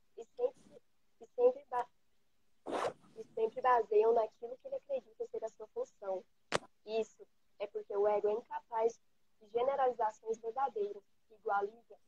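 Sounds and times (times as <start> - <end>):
woman's voice over video call: 0.1 - 1.9, 3.2 - 12.0.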